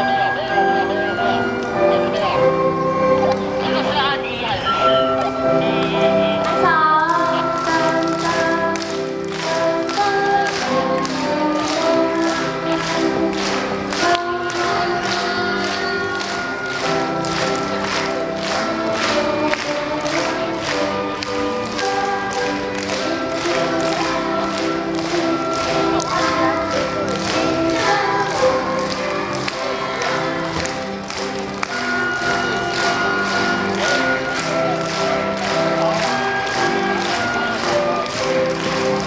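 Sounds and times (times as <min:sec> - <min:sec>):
strings and flutes ensemble: 0:00.0 - 0:06.4
steady tapping beat: 0:04.7 - 0:39.0.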